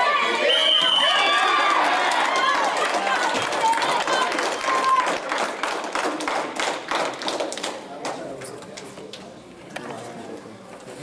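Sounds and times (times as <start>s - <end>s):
spectators clapping: 1.0s - 8.6s.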